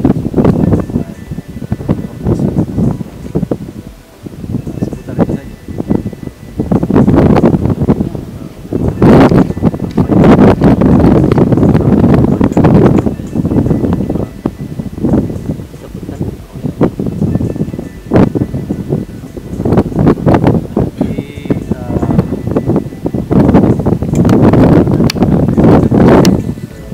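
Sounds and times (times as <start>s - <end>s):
wind buffeting microphone: 0.0s - 26.9s.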